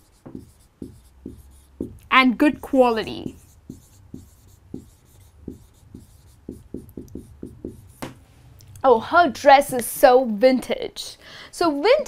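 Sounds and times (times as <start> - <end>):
marker squeaking on whiteboard: 0.0 - 8.2.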